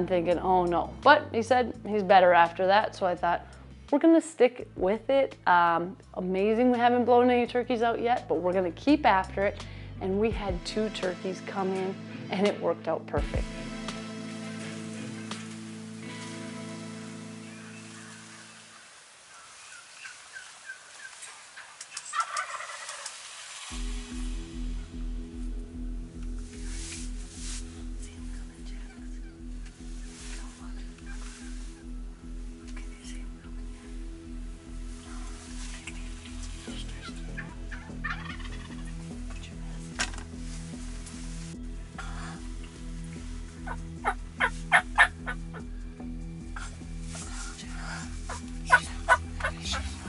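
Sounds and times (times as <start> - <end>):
background music with steady beat: 0.0 - 18.4, 23.7 - 50.0
turkey gobbling: 18.0 - 23.3, 31.0 - 32.0, 37.0 - 39.1, 43.5 - 45.7, 48.3 - 50.0
turkey yelps: 21.9 - 23.2, 37.0 - 39.0, 43.6 - 45.7, 48.3 - 49.9.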